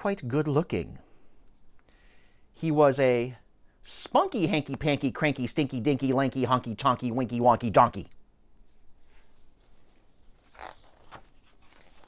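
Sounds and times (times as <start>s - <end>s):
paper pages turning: 10.0s - 12.0s.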